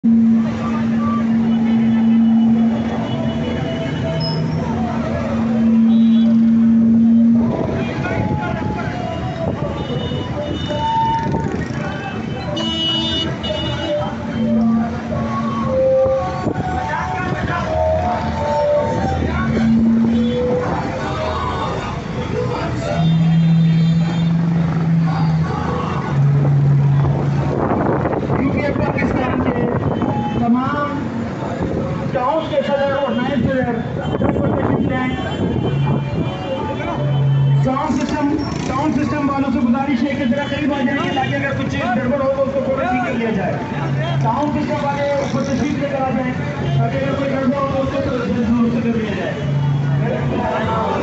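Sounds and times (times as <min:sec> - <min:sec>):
street noise: 0:00.0 - 0:51.0
vehicle engine humming: 0:00.0 - 0:51.0
faint voices: 0:00.1 - 0:51.0
vehicle horn blasts: 0:05.5 - 0:07.8, 0:12.3 - 0:15.8.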